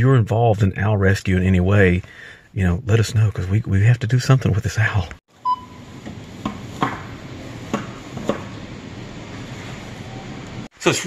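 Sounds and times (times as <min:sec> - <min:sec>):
barcode scanner beep: 0:05.4 - 0:05.8.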